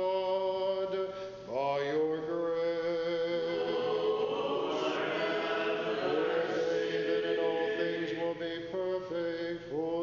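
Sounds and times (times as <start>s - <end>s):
voices chanting: 3.4s - 8.4s.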